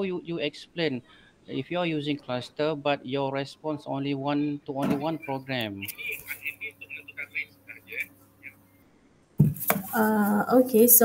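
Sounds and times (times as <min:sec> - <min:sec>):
woman speaking: 0:09.9 - 0:11.0.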